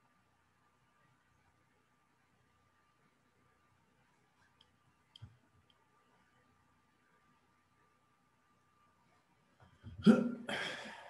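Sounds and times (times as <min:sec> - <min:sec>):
man's short utterance: 0:10.0 - 0:11.0.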